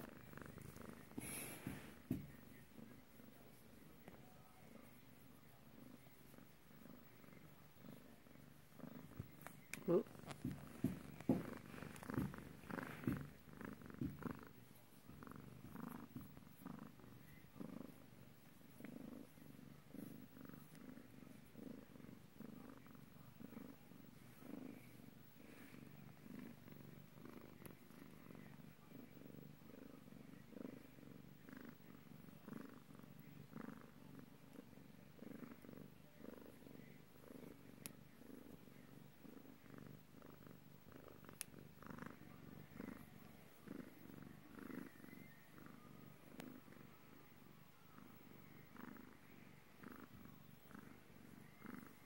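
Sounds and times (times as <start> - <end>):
cat purring: 0.0 - 52.0.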